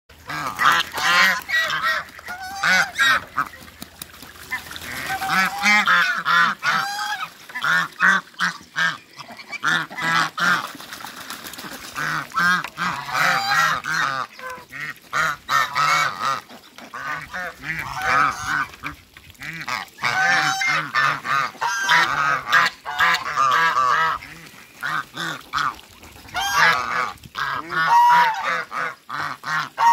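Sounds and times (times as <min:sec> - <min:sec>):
geese honking: 0:00.2 - 0:03.7, 0:04.4 - 0:10.7, 0:12.0 - 0:19.0, 0:19.6 - 0:25.7, 0:26.3 - 0:29.9.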